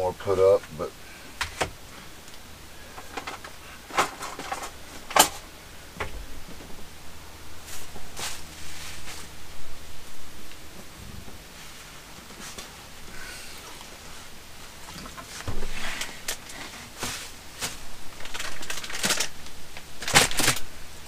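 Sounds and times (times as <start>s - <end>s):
items knocking and clattering: 3.0s - 5.4s
clothing rustling: 7.6s - 9.4s.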